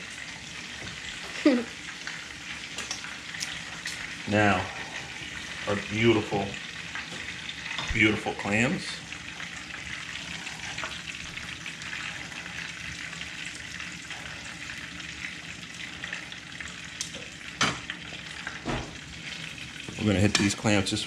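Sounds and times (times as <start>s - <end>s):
food sizzling in oil: 0.0s - 21.0s.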